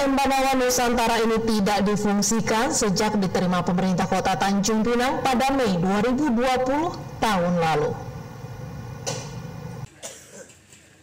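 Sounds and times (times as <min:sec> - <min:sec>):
low steady hum with hiss: 0:00.0 - 0:10.6.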